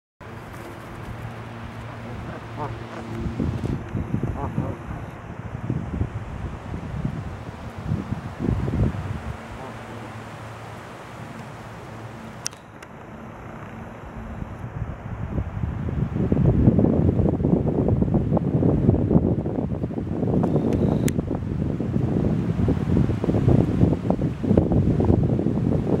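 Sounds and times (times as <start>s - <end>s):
wind rumbling on microphone: 0.2s - 26.0s.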